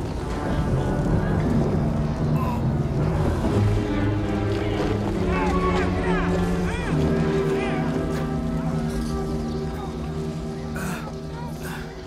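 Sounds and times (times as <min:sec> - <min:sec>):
low orchestral score notes: 0:00.0 - 0:12.0.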